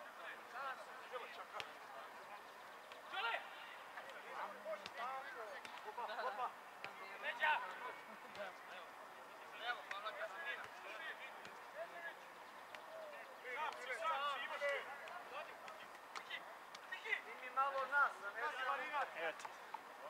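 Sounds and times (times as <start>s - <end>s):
footballers shouting: 3.0s - 20.0s.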